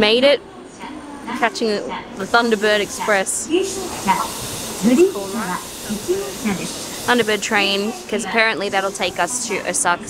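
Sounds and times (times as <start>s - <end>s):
railway station background hiss: 0.0s - 10.0s.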